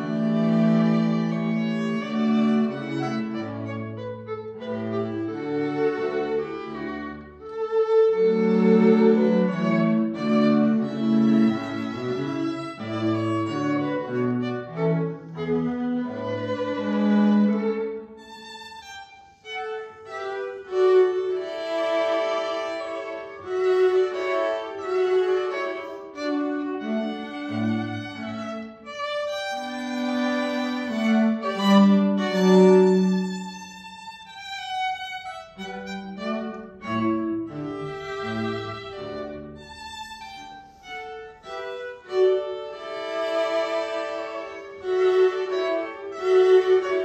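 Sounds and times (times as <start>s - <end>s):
string trio chamber music: 0.0s - 47.0s.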